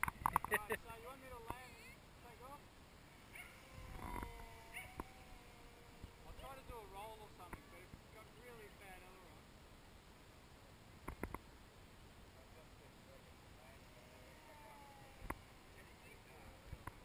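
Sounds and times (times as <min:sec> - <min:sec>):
short wavering calls: 0:03.0 - 0:07.9
model plane electric motor whine: 0:03.1 - 0:06.9
faint clicks: 0:11.0 - 0:11.4, 0:15.2 - 0:15.4.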